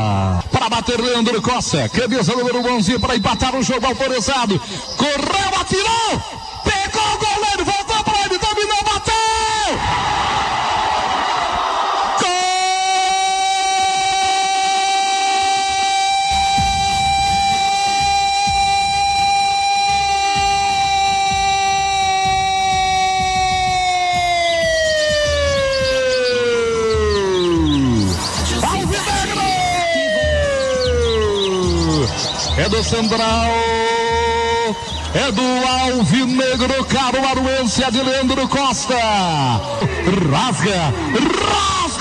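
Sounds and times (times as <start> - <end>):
commentator shouting goal cry: 0.0 - 9.8, 12.2 - 42.0.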